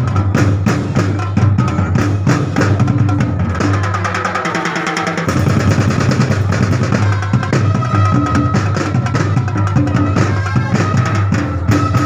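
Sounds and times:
percussion ensemble drumming: 0.0s - 12.0s.

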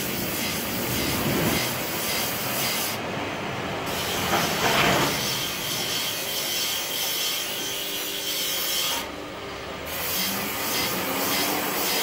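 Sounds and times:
knife grinding on wheel: 9.9s - 12.0s.

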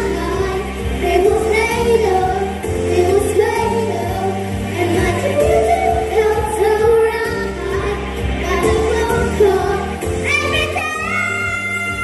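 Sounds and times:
backing track with bass: 0.0s - 12.0s
girls singing into microphones: 0.0s - 12.0s.

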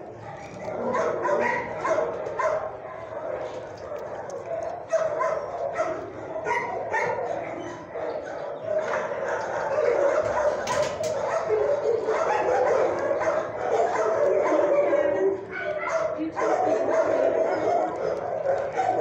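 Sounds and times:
dogs barking and yipping: 0.0s - 19.0s
dogs whimpering: 0.0s - 19.0s.

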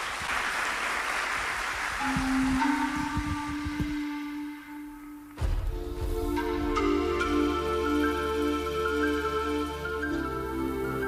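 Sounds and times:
studio audience applause: 0.0s - 3.4s
low thumps: 5.3s - 7.3s.

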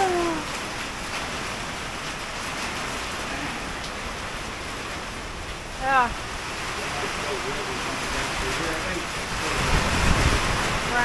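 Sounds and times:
hurricane wind: 0.0s - 11.0s
rain: 0.0s - 11.0s
wind gusts buffeting microphone: 0.1s - 11.0s.

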